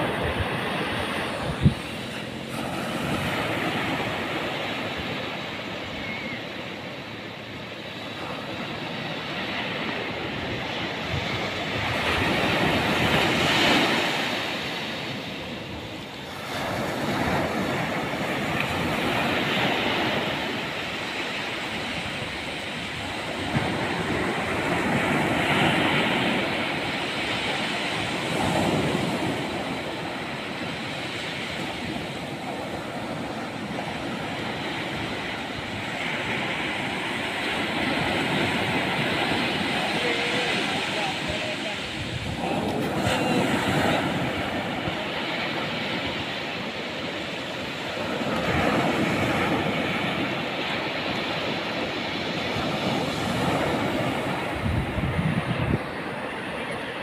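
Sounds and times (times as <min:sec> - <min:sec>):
waves breaking on beach: 0:00.0 - 0:57.0.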